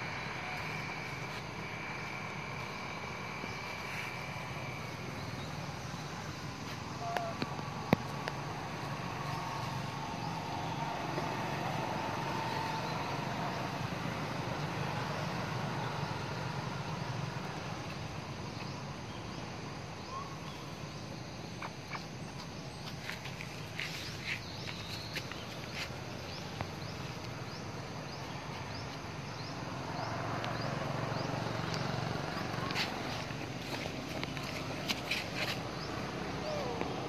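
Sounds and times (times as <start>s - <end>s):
outdoor background noise: 0.0s - 37.0s.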